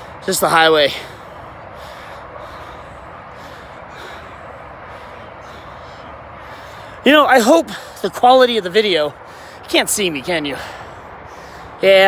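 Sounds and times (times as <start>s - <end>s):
distant highway traffic: 0.0s - 12.0s.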